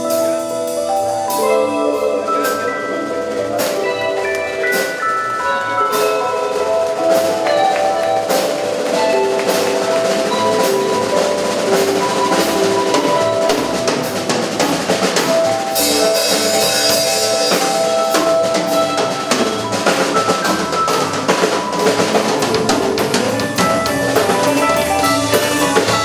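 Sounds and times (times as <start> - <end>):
drum kit beat: 0.0 - 26.0
held keyboard notes: 0.0 - 26.0.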